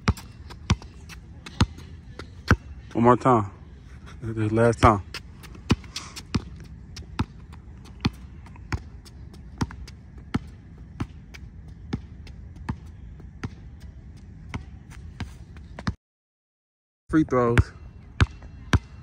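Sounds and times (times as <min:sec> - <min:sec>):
basketball bouncing on asphalt: 0:00.0 - 0:03.0, 0:04.8 - 0:16.0, 0:17.6 - 0:19.0.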